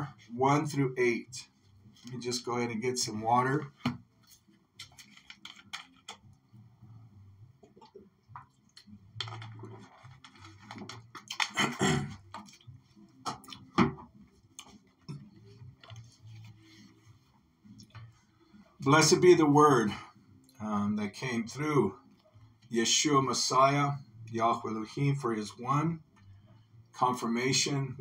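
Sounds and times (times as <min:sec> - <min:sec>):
small clicks and knocks: 0:04.8 - 0:06.2.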